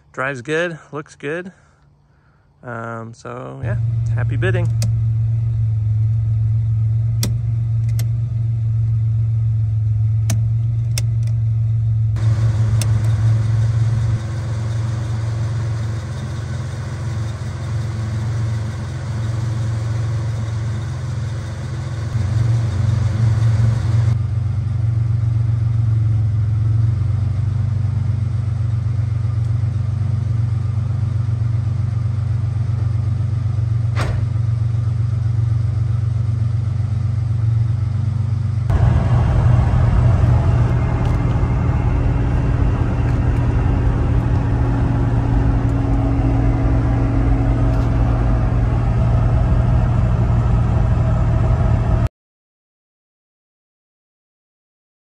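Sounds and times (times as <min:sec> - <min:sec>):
car engine idling: 0:00.0 - 0:52.1
sharp clicks: 0:04.6 - 0:05.0.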